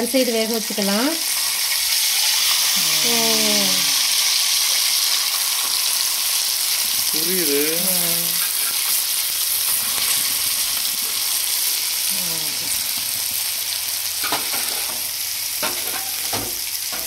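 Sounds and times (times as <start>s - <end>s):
fish sizzling in oil: 0.0s - 17.0s.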